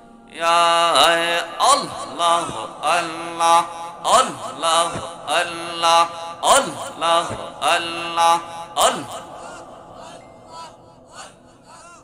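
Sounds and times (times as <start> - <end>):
man chanting into microphone: 0.3 - 12.0.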